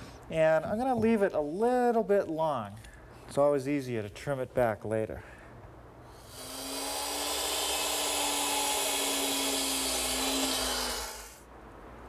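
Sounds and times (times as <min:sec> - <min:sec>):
miter saw cutting wood: 0:06.2 - 0:11.4.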